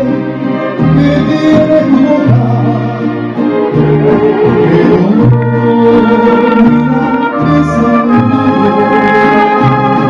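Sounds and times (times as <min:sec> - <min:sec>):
mariachi band playing: 0:00.0 - 0:10.0.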